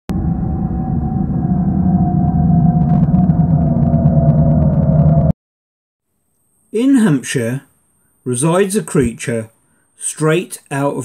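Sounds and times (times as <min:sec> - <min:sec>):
faint crackle: 0:00.1 - 0:05.3
held tone: 0:00.1 - 0:05.3
low rumbling drone: 0:00.1 - 0:05.4.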